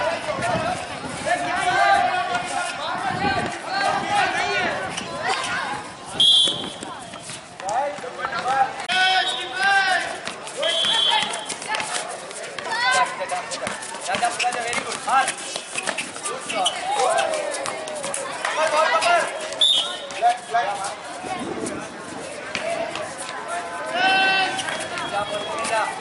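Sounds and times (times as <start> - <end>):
people shouting and calling out: 0.0 - 26.0
shrill whistle blasts: 6.2 - 6.9, 10.6 - 11.4, 19.6 - 20.0.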